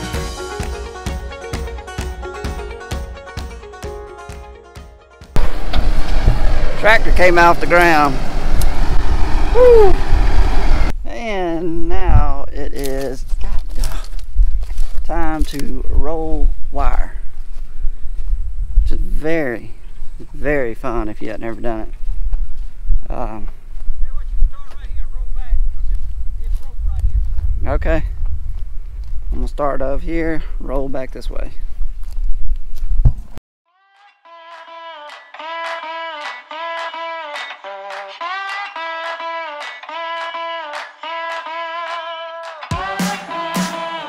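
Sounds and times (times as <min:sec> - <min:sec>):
music: 0:00.0 - 0:05.4, 0:33.7 - 0:44.0
outdoor noise: 0:05.3 - 0:33.4
wind buffeting microphone: 0:05.4 - 0:11.0, 0:13.2 - 0:33.4
man talking: 0:06.8 - 0:08.2, 0:15.1 - 0:17.2, 0:18.9 - 0:21.9, 0:23.1 - 0:28.2, 0:29.3 - 0:31.7.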